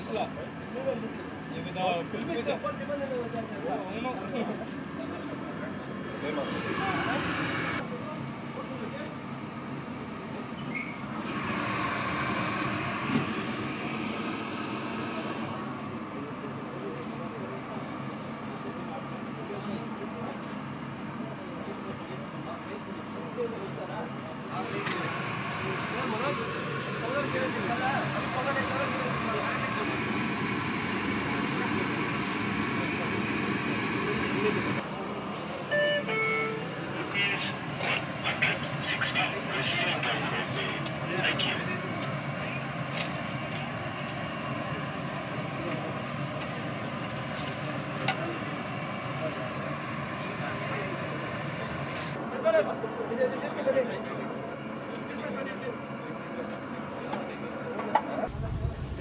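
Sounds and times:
hubbub of indistinct voices: 0.0 - 59.0
street noise: 0.0 - 59.0
high ringing sound: 5.1 - 7.1
short beeps: 5.2 - 6.6, 35.7 - 36.7
indistinct voices: 24.6 - 42.9.

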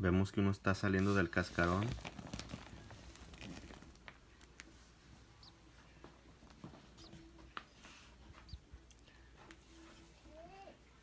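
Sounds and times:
nest material rustling: 1.0 - 4.8
canary peeps: 5.2 - 5.9, 6.8 - 9.2.

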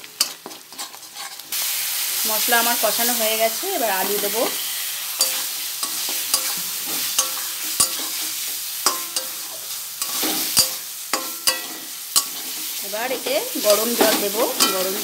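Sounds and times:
potatoes sizzling in a pan: 0.0 - 15.0
spatula scraping a metal pan: 0.2 - 1.6, 4.0 - 12.8.

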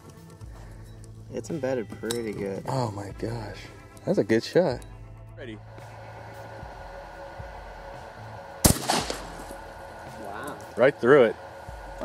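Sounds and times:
shotgun firing: 8.6 - 9.6.

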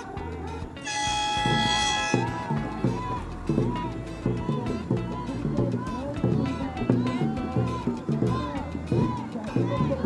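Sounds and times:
crews shouting rhythmic chant: 0.7 - 10.0
starting horn: 0.8 - 3.4.

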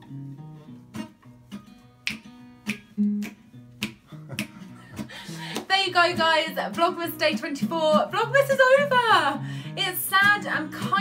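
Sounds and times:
acoustic guitar strummed and picked: 0.0 - 11.0.

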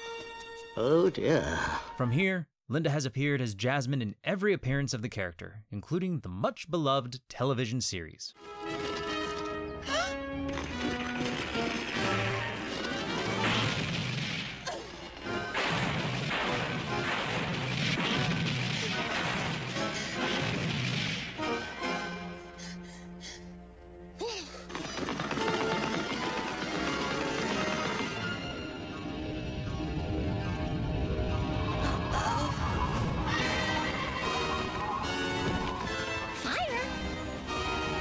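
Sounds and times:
background score music: 8.4 - 38.0
crashing sound effects: 15.5 - 21.4.

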